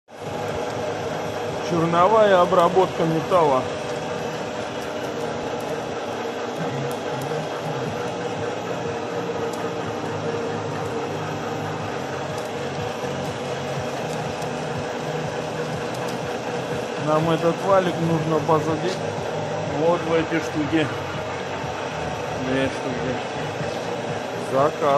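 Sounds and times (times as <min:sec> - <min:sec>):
metal lathe cutting: 0:00.1 - 0:24.9.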